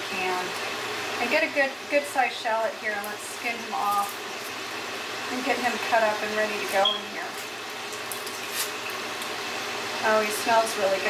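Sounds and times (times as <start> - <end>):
steaks sizzling in a pan: 0.0 - 11.0.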